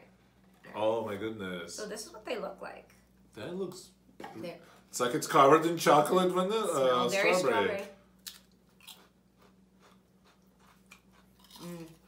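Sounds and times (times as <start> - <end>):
potato chip crunching: 8.2 - 12.0.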